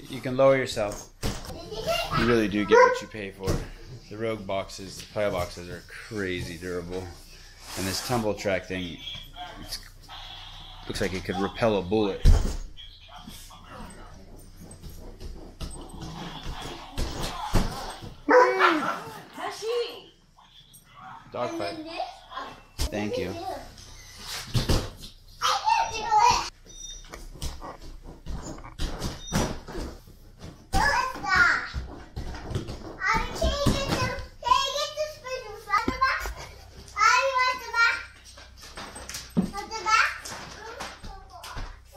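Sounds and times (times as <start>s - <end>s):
child's voice: 1.5s - 2.8s, 21.4s - 23.8s, 25.4s - 26.5s, 30.7s - 31.9s, 33.0s - 38.2s, 39.4s - 41.9s
dog whining barks: 2.7s - 3.1s, 17.8s - 19.1s.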